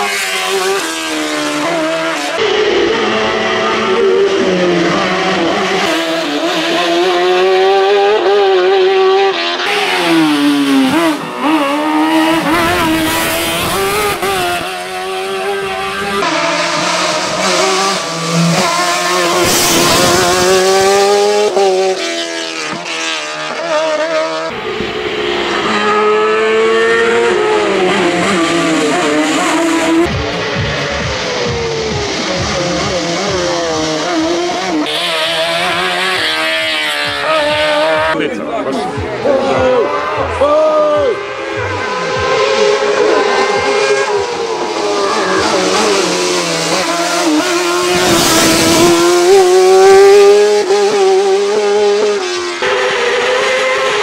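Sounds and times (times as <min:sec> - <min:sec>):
race car engine at high revs: 0:00.0 - 0:54.0.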